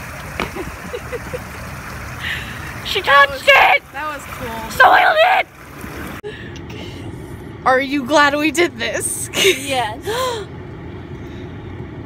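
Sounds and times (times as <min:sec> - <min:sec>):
fountain water running: 0:00.0 - 0:06.4
faint laughter: 0:00.4 - 0:01.6
low rumble: 0:05.5 - 0:12.0.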